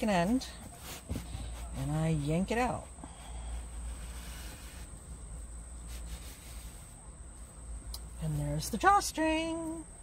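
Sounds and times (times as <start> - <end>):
drawstring rustling through fabric: 0.0 - 9.8
low steady rumble: 0.0 - 10.0.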